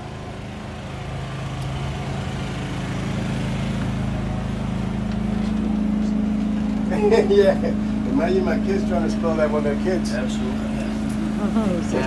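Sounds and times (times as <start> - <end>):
motor drone: 0.0 - 12.0.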